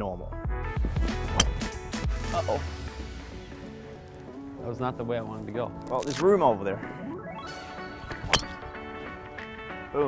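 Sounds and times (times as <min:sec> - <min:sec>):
background music with sustained notes: 0:00.0 - 0:10.0
golf club striking ball: 0:01.2 - 0:01.8, 0:08.0 - 0:08.9.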